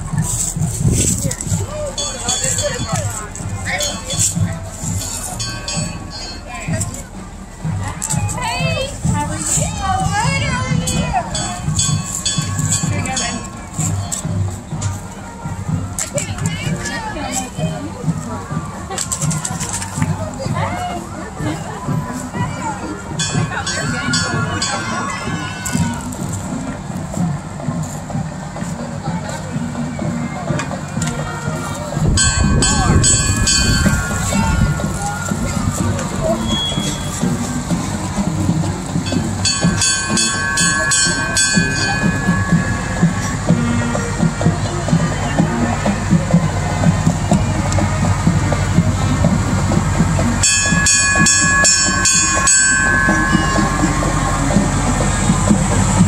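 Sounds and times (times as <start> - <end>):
vehicle engines rumbling: 0.0 - 56.0.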